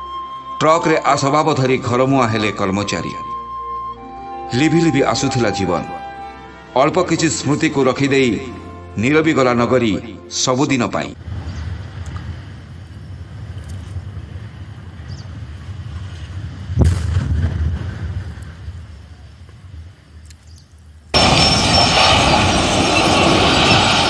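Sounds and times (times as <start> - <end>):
deep boom of chimney falling: 16.8 - 18.4.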